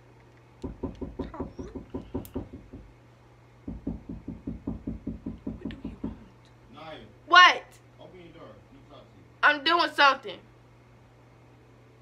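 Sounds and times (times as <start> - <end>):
rapid knocking taps on hard surface: 0.6 - 2.9, 3.6 - 6.2.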